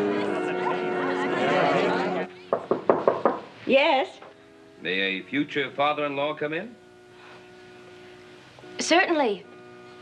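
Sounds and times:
knocking on a door: 0:02.5 - 0:03.5.

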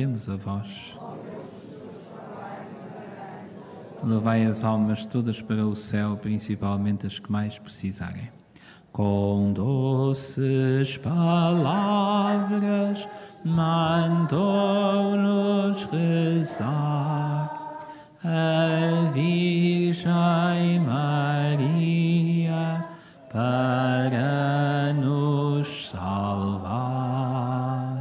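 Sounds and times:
man singing a hymn unaccompanied: 0:00.0 - 0:01.0, 0:04.0 - 0:28.0.

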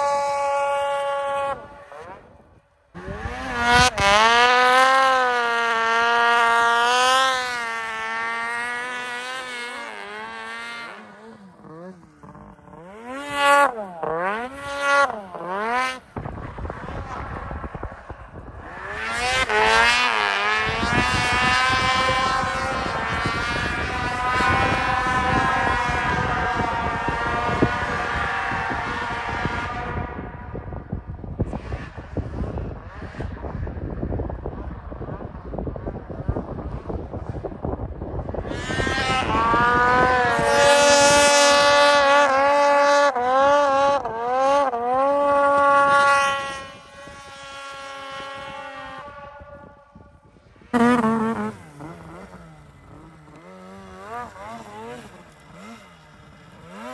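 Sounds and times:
snowmobile engines revving: 0:00.0 - 0:56.9.

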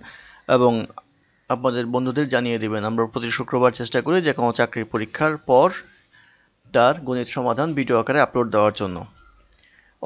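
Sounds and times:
man narrating: 0:00.0 - 0:05.9, 0:06.7 - 0:09.2.

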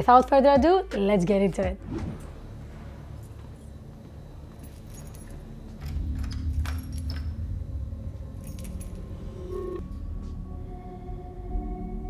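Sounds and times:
low rumble: 0:01.7 - 0:04.5, 0:05.3 - 0:12.0
light metallic jingling: 0:04.5 - 0:07.5, 0:08.3 - 0:09.3.

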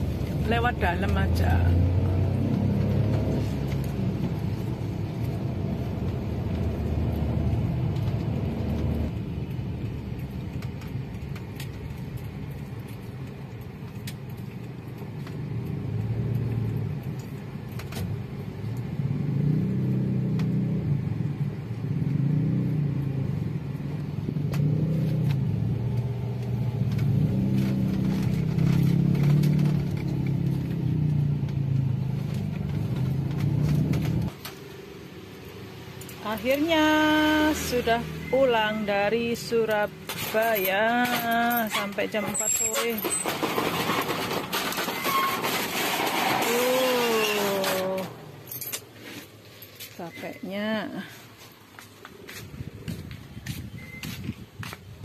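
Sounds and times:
car engine and road noise: 0:00.0 - 0:55.0.

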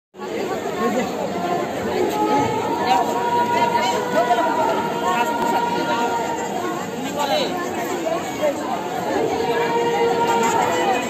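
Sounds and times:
crowd talking: 0:00.2 - 0:11.0.

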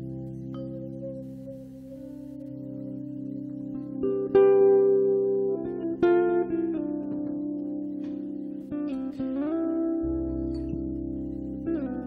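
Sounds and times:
plucked guitar notes: 0:00.0 - 0:12.0.

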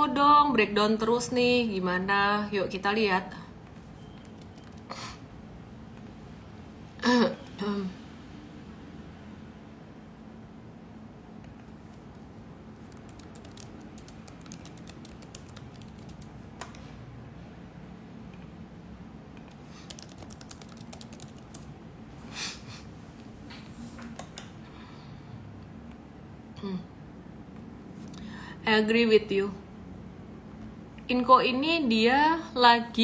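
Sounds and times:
woman clearing her throat: 0:07.0 - 0:08.0.

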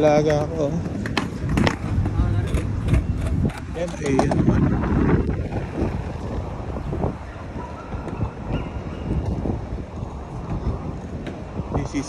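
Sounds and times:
skateboard clacking on pavement: 0:00.0 - 0:04.5
skateboard wheels rolling on paving: 0:00.0 - 0:12.0.

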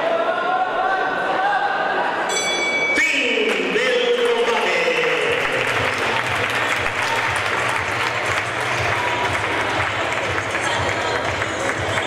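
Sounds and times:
crowd voices: 0:00.0 - 0:12.0
audience applauding: 0:03.5 - 0:12.0.

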